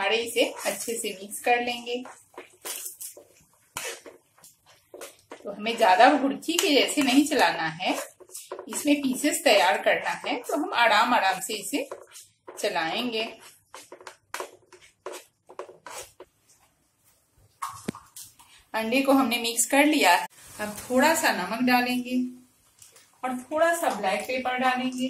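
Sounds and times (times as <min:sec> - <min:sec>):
eggs frying in hot oil: 0:00.0 - 0:16.6, 0:19.6 - 0:25.0
metal spoon scraping frying pan: 0:00.3 - 0:04.2.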